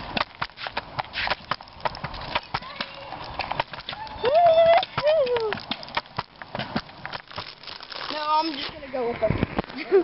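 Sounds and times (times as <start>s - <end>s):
dog's paws clicking on pavement: 0.0s - 9.9s
footsteps on pavement: 0.0s - 10.0s
rustling: 0.0s - 10.0s.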